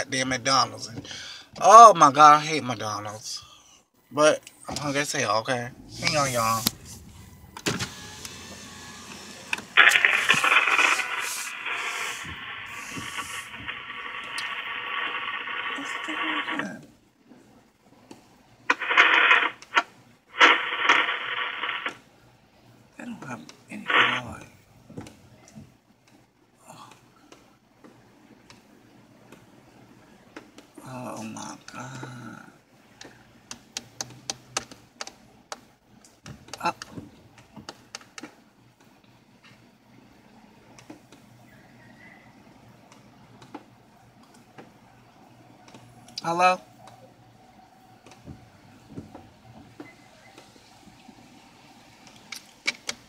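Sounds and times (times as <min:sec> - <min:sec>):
faint low hum: 0:00.0 - 0:37.7
tinny drive-thru speaker: 0:04.1 - 0:16.9.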